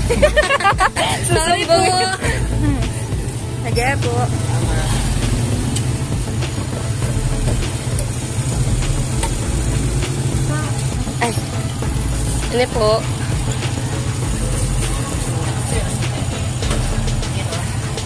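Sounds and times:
people talking: 0.0s - 5.7s, 10.3s - 11.6s, 12.2s - 18.0s
motorcycle engine idling: 0.0s - 18.0s.

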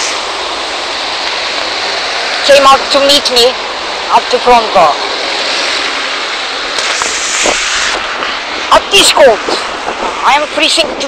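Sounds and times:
tyres hissing on wet road: 0.0s - 11.0s.

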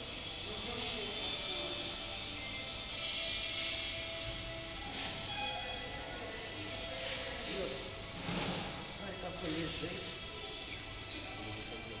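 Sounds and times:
faint music: 0.0s - 12.0s
people talking indistinctly: 5.2s - 12.0s.

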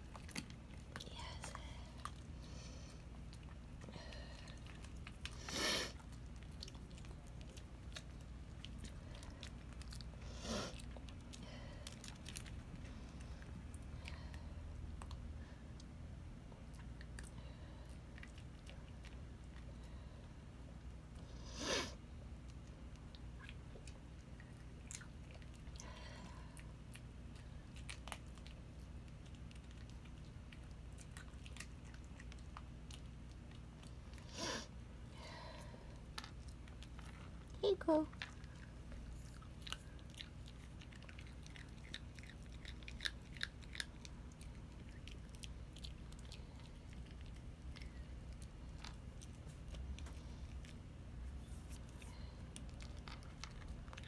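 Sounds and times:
dog chewing biscuit treats: 36.0s - 54.0s.

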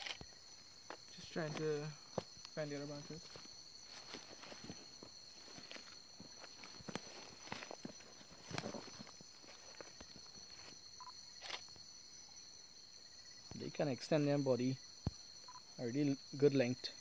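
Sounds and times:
insect chirping: 0.0s - 17.0s
insects trilling: 0.0s - 17.0s.

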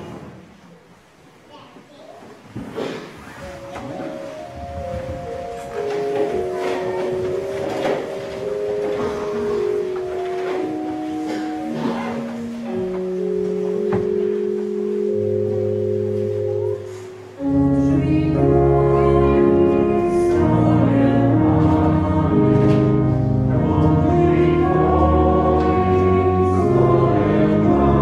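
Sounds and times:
church organ playing slow melody: 3.4s - 28.0s.

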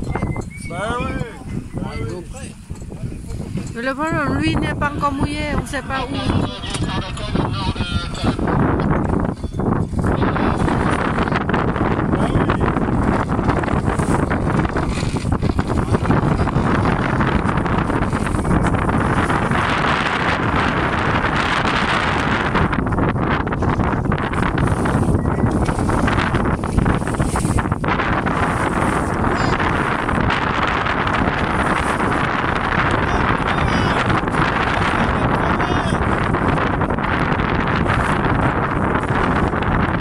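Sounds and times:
wind rumbling on microphone: 0.0s - 40.0s
water rushing: 10.0s - 40.0s.

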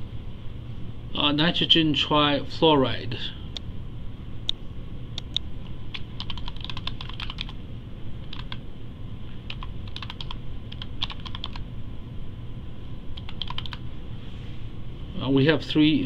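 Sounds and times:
low background hum: 0.0s - 16.0s
computer keyboard typing: 5.2s - 7.6s, 8.2s - 8.6s, 9.4s - 11.6s, 13.2s - 13.8s.

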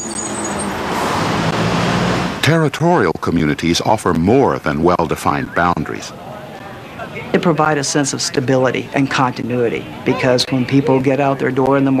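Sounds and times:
cars going by: 0.0s - 3.8s.

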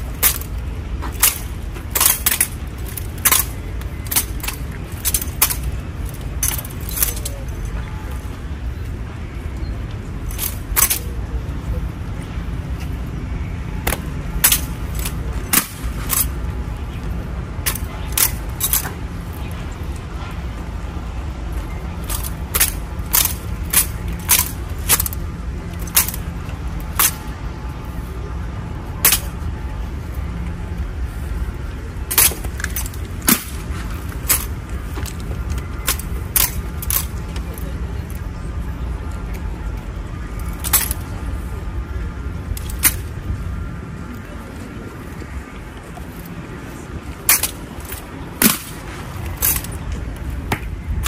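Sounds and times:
low rumble of wind: 0.0s - 51.0s
metallic clinks: 1.1s - 7.8s, 10.2s - 11.1s, 17.6s - 18.9s, 22.0s - 26.3s, 49.3s - 49.8s.

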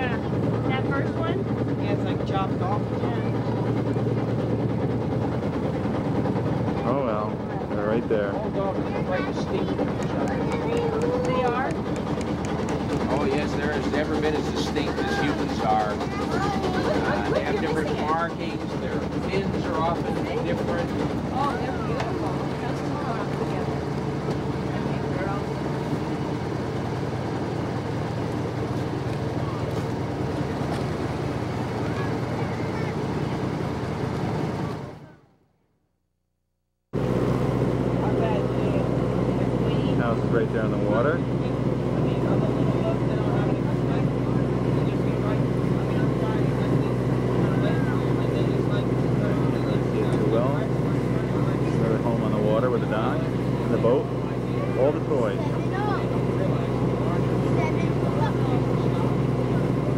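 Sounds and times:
boat engine humming: 0.0s - 36.0s, 36.9s - 59.9s.

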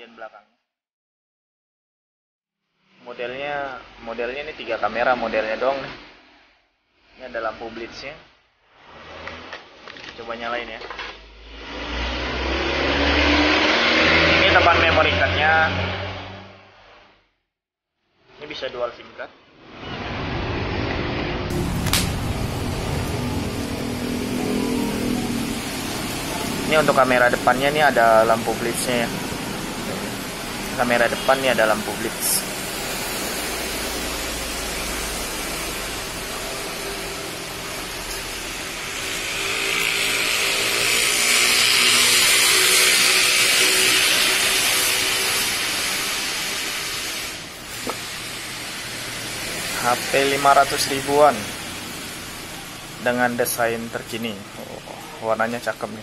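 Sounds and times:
busy workplace hiss and rumble: 3.0s - 12.0s, 14.3s - 15.7s, 21.5s - 56.0s
sharp click: 21.8s - 22.2s.

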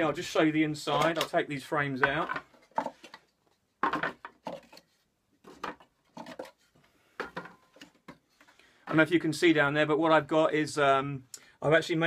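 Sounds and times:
wooden frames knocking and scraping: 2.0s - 9.1s.

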